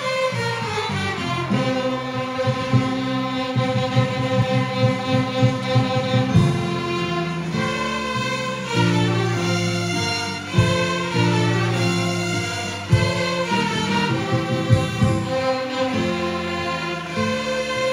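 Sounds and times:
string section playing: 0.0s - 17.9s.

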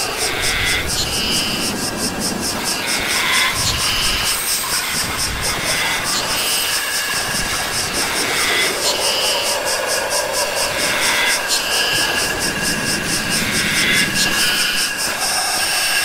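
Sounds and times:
fast high electronic ticks: 0.0s - 16.0s.

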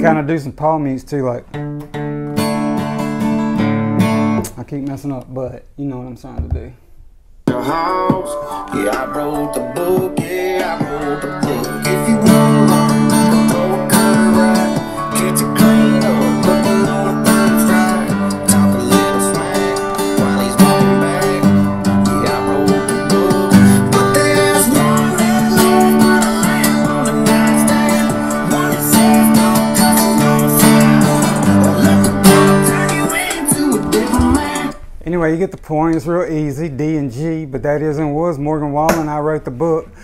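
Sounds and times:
acoustic guitar strumming: 0.0s - 0.8s, 1.4s - 4.6s, 7.5s - 34.9s.

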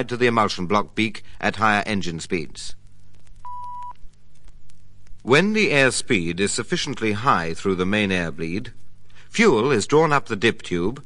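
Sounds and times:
faint low hum: 0.0s - 11.0s
scattered clicks: 2.8s - 5.3s.

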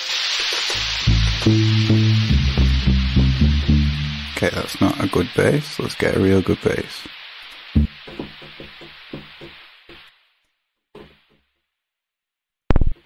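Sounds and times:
high hiss: 0.0s - 10.4s
deep synth bass note: 0.9s - 4.4s, 7.8s - 8.1s
short synth notes: 0.9s - 4.4s, 7.8s - 8.1s.

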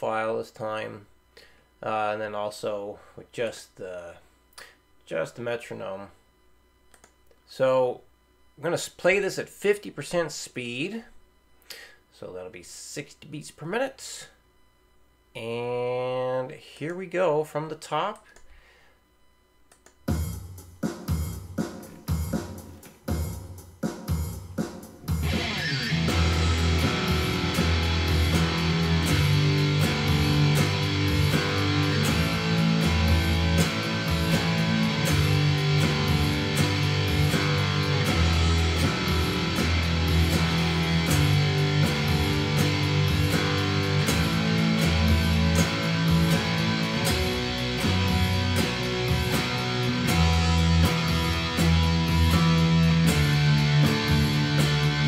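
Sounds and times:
metronome clicks: 6.9s - 7.4s, 19.6s - 20.0s
recorded guitar track: 25.0s - 55.0s
electric guitar power-chord riff: 25.1s - 55.0s.

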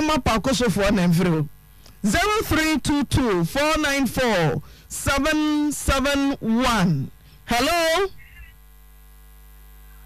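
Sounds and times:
electrical hum on telephone line: 0.0s - 10.0s.

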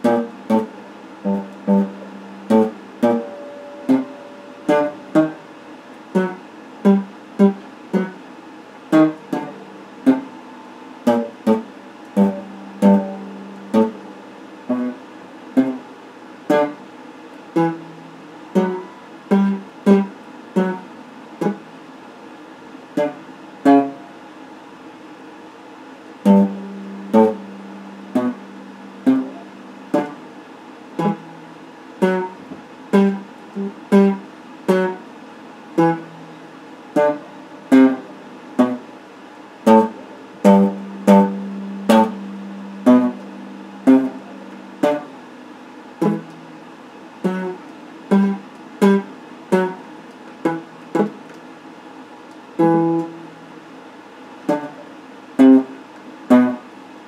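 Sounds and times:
electric guitar picked notes: 0.0s - 8.3s, 8.9s - 15.9s, 16.5s - 16.9s, 17.5s - 21.8s, 23.0s - 24.2s, 26.2s - 38.9s, 39.6s - 51.2s, 52.6s - 53.5s, 55.4s - 56.6s.

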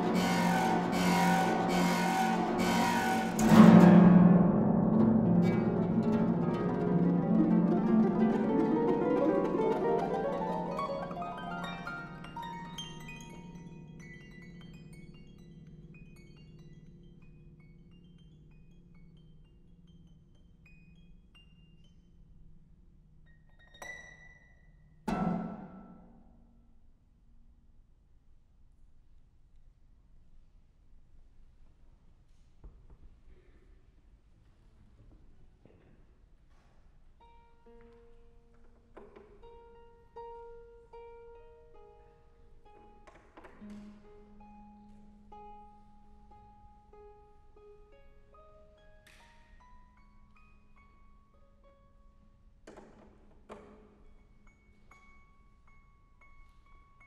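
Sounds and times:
harp plucked notes: 0.0s - 21.9s.

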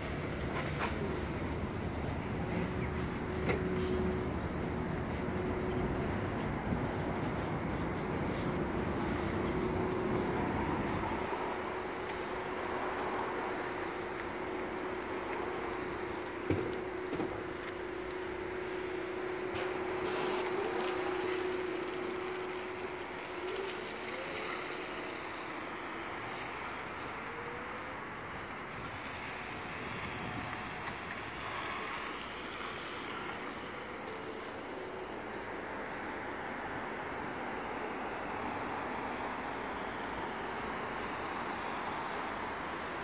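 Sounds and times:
electric bus hum: 0.0s - 43.0s
road noise: 0.0s - 43.0s.

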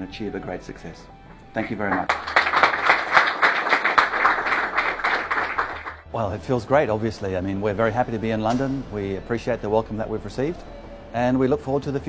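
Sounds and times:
crowd applauding: 1.6s - 6.0s.

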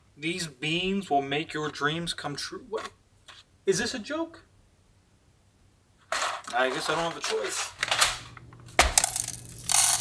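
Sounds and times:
coffee beans poured into cup: 9.0s - 10.0s.

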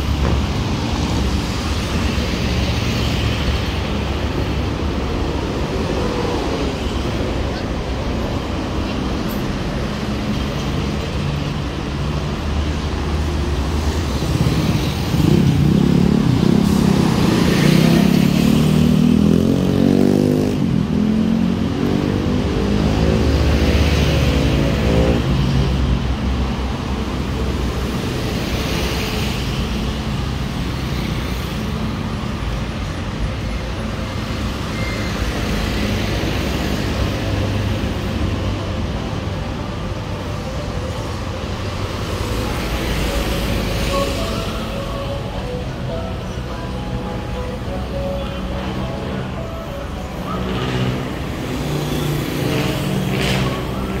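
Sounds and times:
road traffic: 0.0s - 54.0s.

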